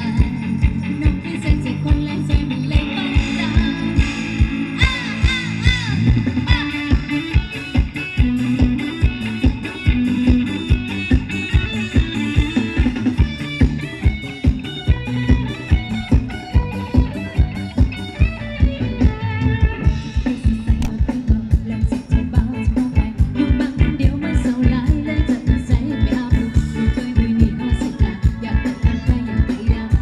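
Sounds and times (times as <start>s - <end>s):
guitar melody: 0.0s - 30.0s
steady drum beat: 0.0s - 30.0s.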